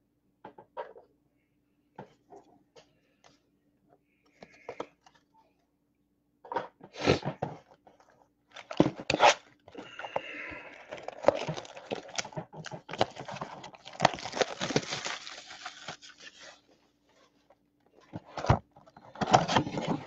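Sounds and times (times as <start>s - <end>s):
plastic wrappers crinkling and tearing: 8.5s - 16.7s.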